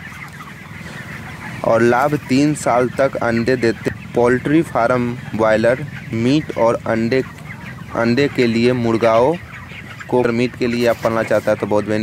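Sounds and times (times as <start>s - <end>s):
chickens calling: 0.0s - 12.0s
man talking: 1.6s - 7.3s, 7.9s - 9.4s, 10.1s - 12.0s.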